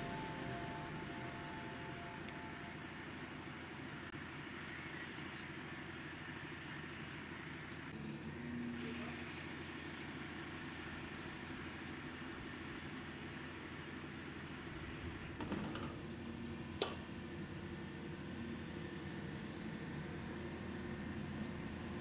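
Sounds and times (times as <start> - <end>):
crane engine running: 0.0 - 22.0.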